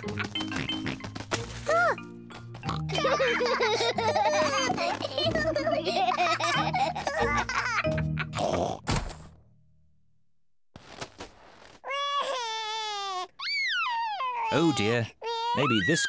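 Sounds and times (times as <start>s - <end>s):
cartoon music: 0.0s - 8.7s
laughter: 2.9s - 8.3s
toddler wailing cry: 11.9s - 16.0s.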